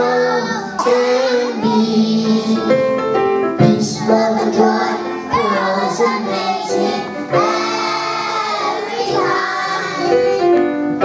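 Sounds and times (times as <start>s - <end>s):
musical accompaniment: 0.0s - 11.0s.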